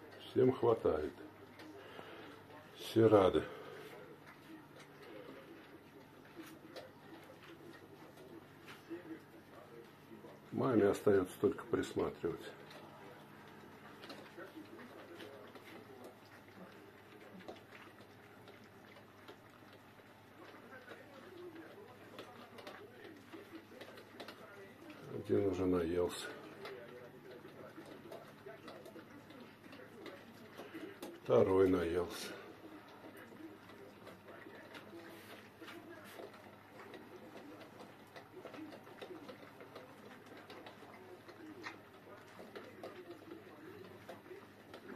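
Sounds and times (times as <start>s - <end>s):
puppies chewing: 0.0s - 44.9s.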